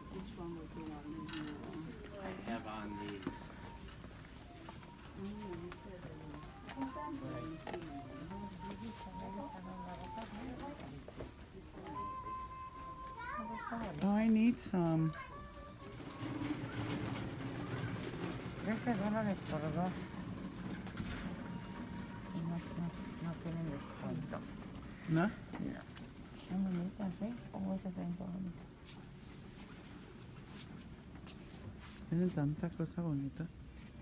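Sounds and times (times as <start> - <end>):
faint voices: 0.0 - 28.8
faint music: 0.0 - 34.0.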